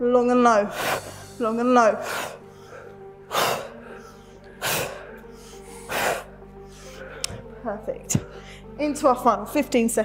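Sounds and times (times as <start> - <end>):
background music: 0.0 - 10.0
person breathing out hard: 2.0 - 7.5.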